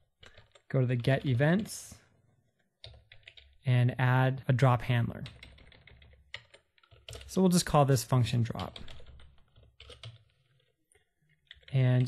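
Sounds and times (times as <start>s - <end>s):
typing on a computer keyboard: 0.1s - 1.7s, 2.5s - 3.6s, 5.2s - 7.4s, 8.5s - 12.0s.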